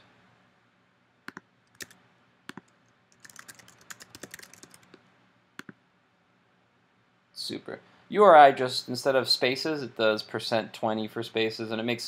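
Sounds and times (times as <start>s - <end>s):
computer keyboard typing: 1.3s - 5.0s.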